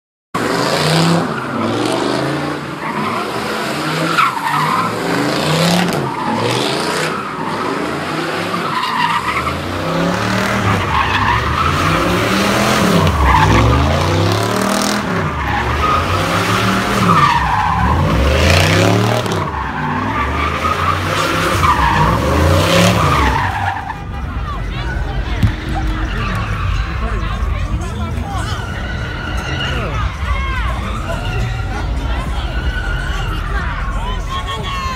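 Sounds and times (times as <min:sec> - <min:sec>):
car engine revving: 0:00.4 - 0:34.8
tires squealing: 0:00.4 - 0:34.9.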